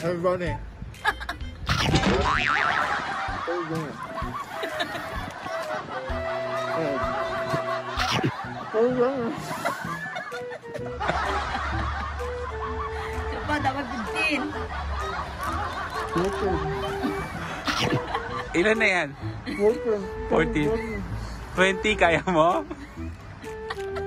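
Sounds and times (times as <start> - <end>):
background music: 0.0 - 24.0
people laughing: 2.5 - 18.7, 22.2 - 24.0
man laughing with full mouth: 2.7 - 13.2, 15.5 - 18.5.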